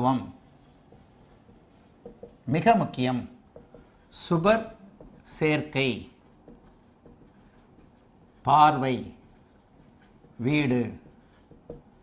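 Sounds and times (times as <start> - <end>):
marker pen writing on whiteboard: 0.0 - 12.0
man speaking: 2.4 - 3.4, 4.1 - 6.2, 8.4 - 9.2, 10.4 - 11.0.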